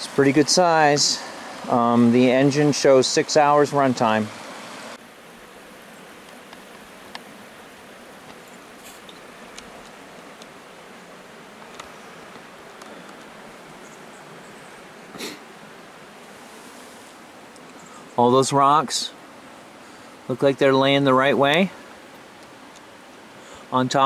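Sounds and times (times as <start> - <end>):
steady background hiss: 0.0 - 24.0
faint ticks: 6.2 - 7.3
short rustle: 8.3 - 10.4, 16.2 - 18.1.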